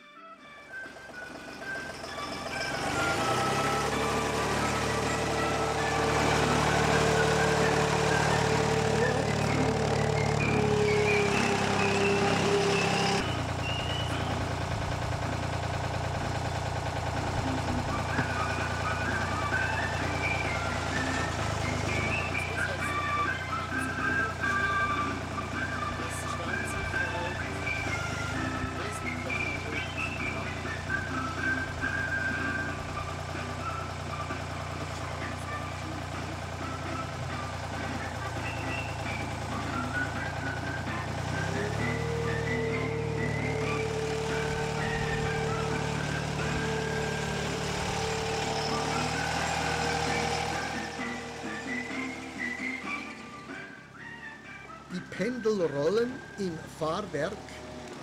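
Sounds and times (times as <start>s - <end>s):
background music: 0.0s - 58.0s
diesel engine running: 0.0s - 58.0s
steady machine whine: 0.3s - 58.0s.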